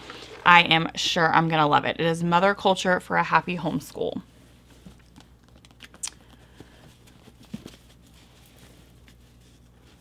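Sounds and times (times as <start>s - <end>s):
books handled on tabletop: 6.4s - 10.0s.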